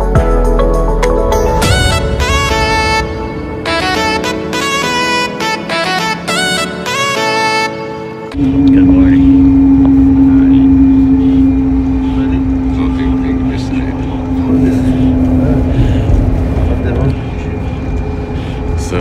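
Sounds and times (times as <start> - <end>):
bus engine drone: 0.0 - 19.0
low road rumble: 0.8 - 19.0.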